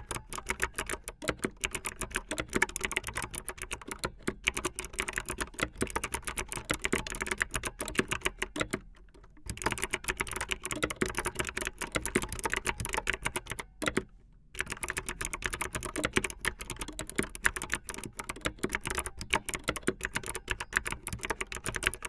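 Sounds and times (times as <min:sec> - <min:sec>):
fast typing on clicky keyboard: 0:00.0 - 0:22.0.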